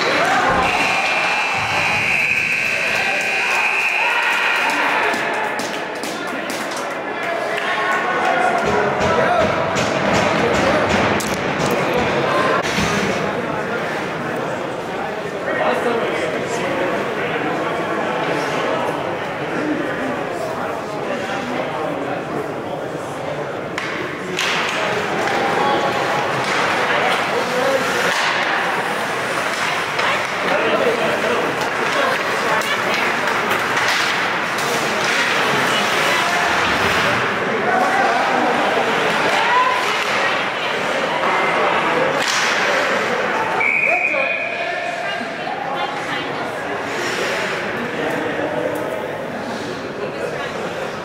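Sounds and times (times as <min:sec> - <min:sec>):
players and spectators shouting: 0:00.0 - 0:05.8
referee's whistle blast: 0:00.5 - 0:04.6, 0:43.6 - 0:44.7
hockey sticks and puck knocking: 0:07.6 - 0:13.1, 0:23.7 - 0:25.6, 0:29.3 - 0:36.9.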